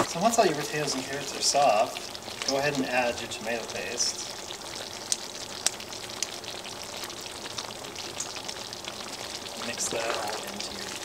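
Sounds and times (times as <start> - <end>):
food frying in oil: 0.0 - 11.0.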